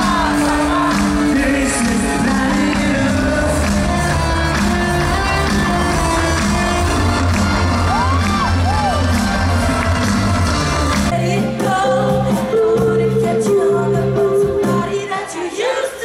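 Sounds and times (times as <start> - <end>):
live band with singer: 0.0 - 16.0.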